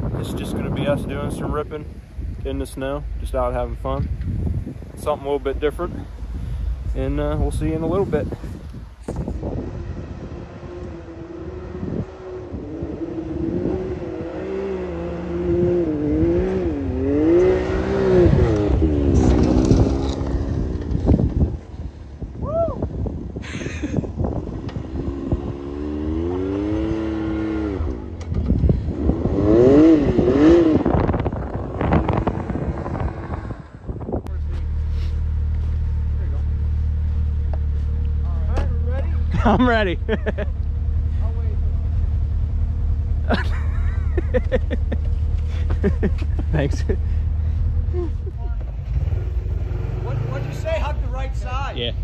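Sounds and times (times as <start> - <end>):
engines revving: 0.0 - 21.7, 24.3 - 52.0
engine low drone: 0.0 - 52.0.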